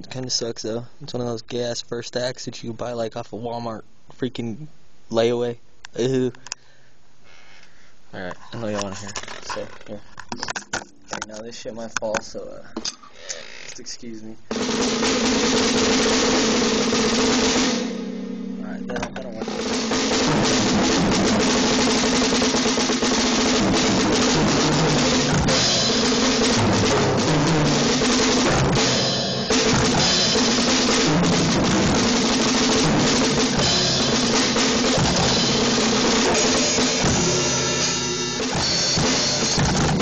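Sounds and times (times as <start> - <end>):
drum kit solo: 14.5 - 40.0.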